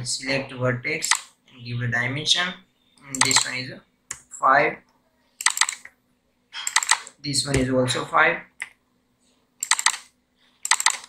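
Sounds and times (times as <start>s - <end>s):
computer keyboard typing: 1.0s - 1.3s, 3.1s - 3.6s, 5.4s - 5.9s, 6.6s - 7.2s, 9.6s - 11.0s.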